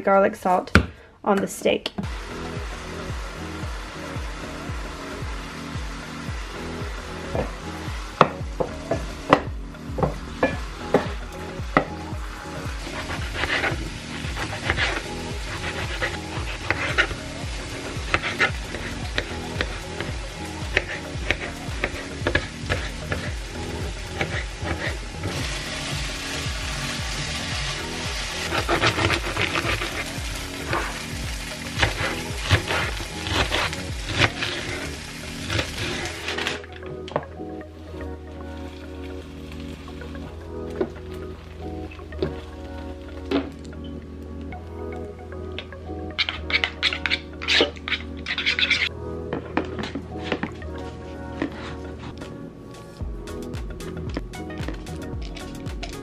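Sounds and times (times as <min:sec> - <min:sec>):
food sizzling in a pan: 0:02.0 - 0:36.8, 0:37.8 - 0:43.8.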